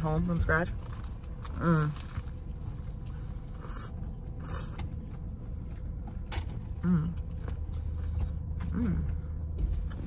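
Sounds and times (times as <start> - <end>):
steady low rumble: 0.0 - 10.0
chewing crusty bread: 0.2 - 10.0.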